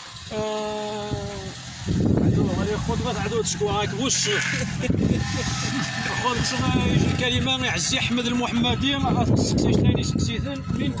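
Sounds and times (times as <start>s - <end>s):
men talking over one another: 0.3s - 5.2s, 5.8s - 11.0s.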